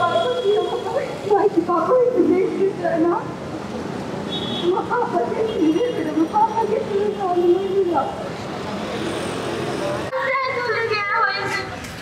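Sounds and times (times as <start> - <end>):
faint crowd voices: 0.0 - 12.0
road traffic noise: 0.0 - 12.0.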